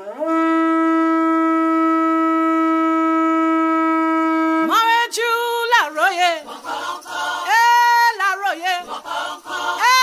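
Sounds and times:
conch shell trumpet blown: 0.0s - 6.4s.

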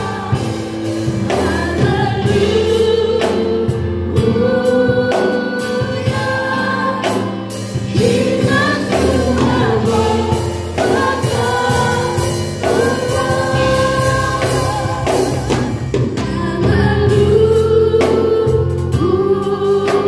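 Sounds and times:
gospel choir singing: 0.0s - 20.0s.

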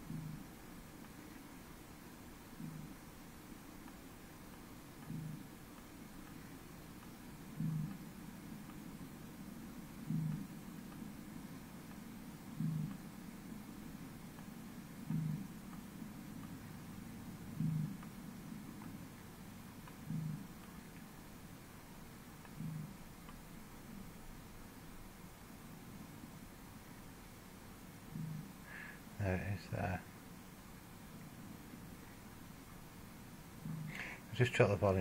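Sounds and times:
steady low background: 0.0s - 35.0s.

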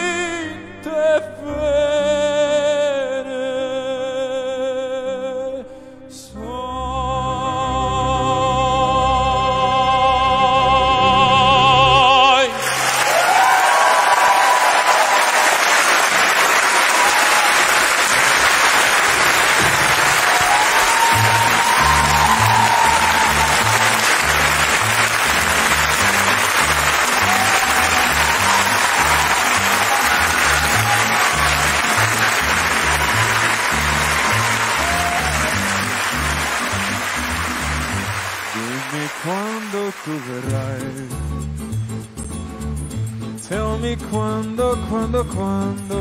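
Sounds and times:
audience applauding: 12.6s - 41.0s.

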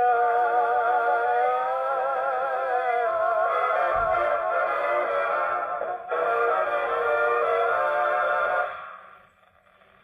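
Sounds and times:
orchestra chord on gramophone: 3.4s - 9.8s.

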